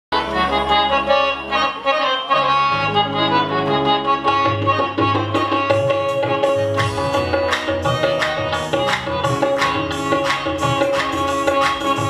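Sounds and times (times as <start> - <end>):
harmonium melody: 0.1 - 12.0.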